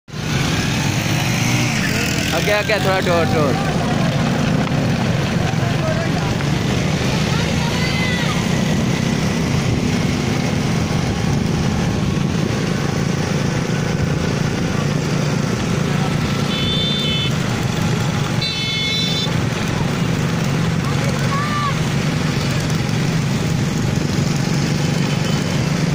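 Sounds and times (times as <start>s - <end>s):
small motorcycle engines running: 0.1s - 25.9s.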